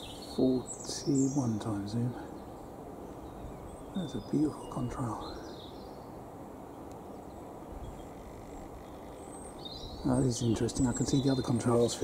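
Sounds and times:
distant jet engines rumbling: 0.0s - 12.0s.

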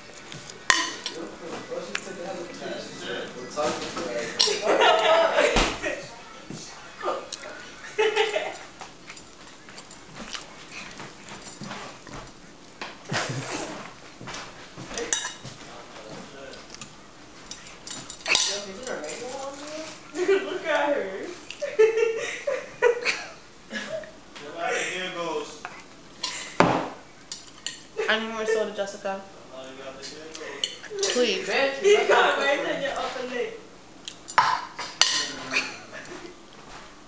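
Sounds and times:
food being chewed: 0.0s - 1.2s, 7.3s - 7.7s, 8.5s - 20.0s, 34.0s - 34.4s
tableware clatter: 0.7s - 1.2s, 14.9s - 15.5s, 17.4s - 19.5s, 34.2s - 35.8s.

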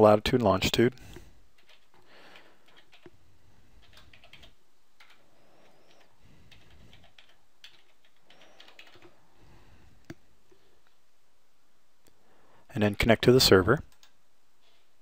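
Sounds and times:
low steady hiss: 0.0s - 15.0s
computer keyboard keystrokes: 1.6s - 3.1s, 3.8s - 5.2s, 5.9s - 9.2s, 13.9s - 14.2s.

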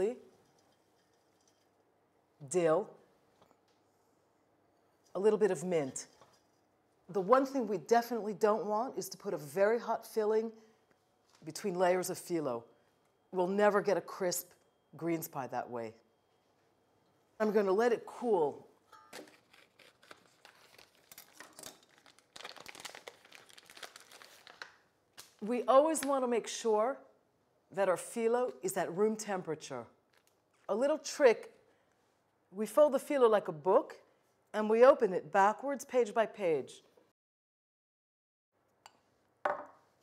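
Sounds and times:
plastic packaging crinkling: 19.1s - 25.4s.

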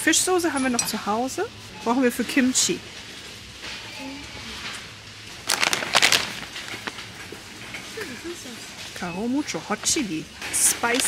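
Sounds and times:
plastic chip bag crinkling: 5.4s - 7.5s.

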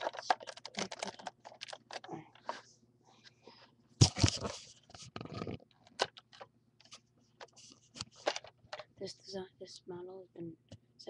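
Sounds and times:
plastic bricks clicking and clattering: 0.0s - 2.6s, 5.1s - 6.5s, 8.2s - 8.9s.

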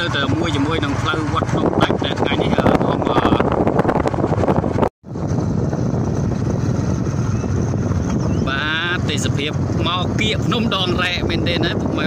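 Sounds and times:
motorcycle engine running: 0.0s - 12.0s
wind buffeting microphone: 0.0s - 12.0s.

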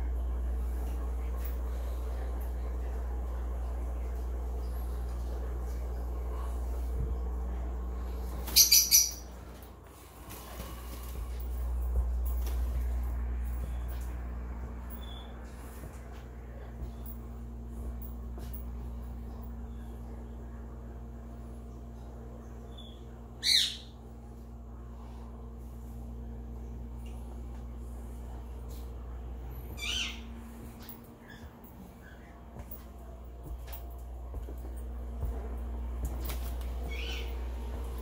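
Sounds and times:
low hum: 0.0s - 38.0s
parrot squawk: 8.5s - 9.2s
parrot squawking: 8.5s - 9.2s, 23.4s - 23.9s, 29.8s - 30.2s, 36.9s - 37.3s.

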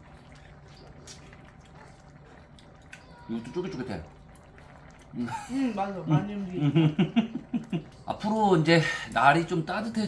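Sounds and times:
low steady hum: 0.0s - 10.0s
stew bubbling in a pot: 0.0s - 10.0s.

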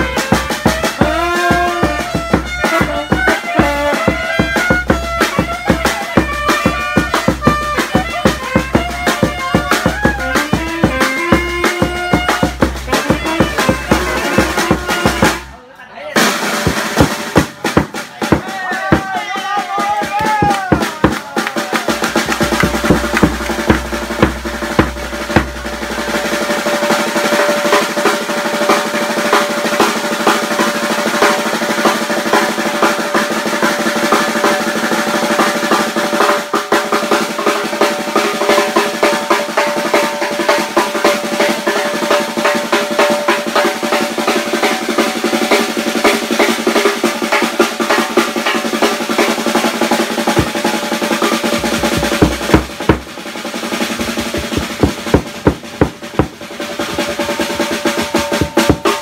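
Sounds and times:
loud drum strikes: 0.0s - 15.5s, 16.2s - 19.2s, 19.8s - 59.0s
snare drum roll: 0.0s - 15.5s, 16.2s - 59.0s.

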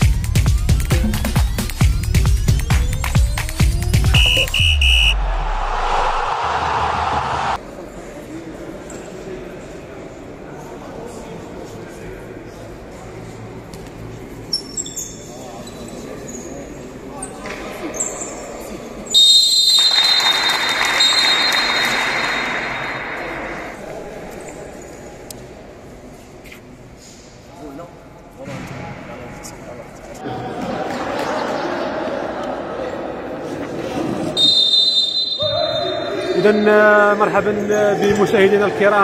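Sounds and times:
shrill steady tone: 4.0s - 7.6s
short high beeps: 4.1s - 5.2s.

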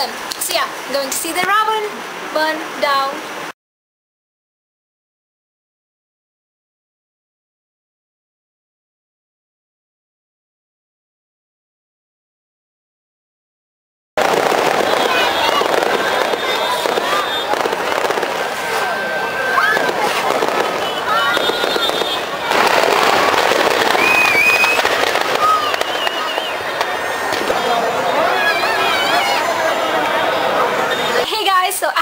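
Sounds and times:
firecrackers crackling and popping: 0.2s - 1.6s, 14.2s - 31.6s
crowd voices: 14.2s - 32.0s
short whistling tones: 23.8s - 26.7s.

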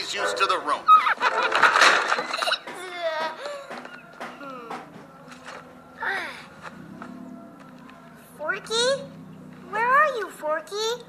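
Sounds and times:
girl's high-pitched cries: 2.7s - 3.7s.

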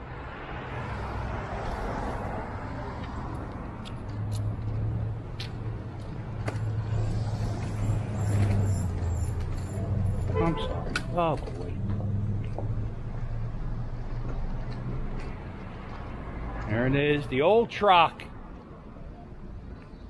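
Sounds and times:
vehicles passing: 0.0s - 20.0s
low engine hum: 1.6s - 16.6s.

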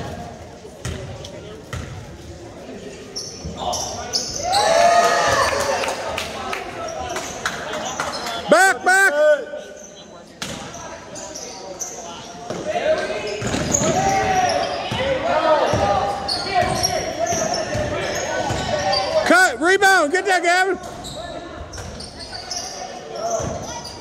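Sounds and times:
sneakers squeaking: 0.0s - 5.4s, 9.6s - 19.3s, 20.8s - 24.0s.

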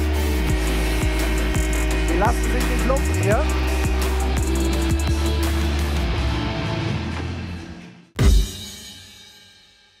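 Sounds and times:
drum and cymbal hit: 0.0s - 6.0s, 8.2s - 10.0s.

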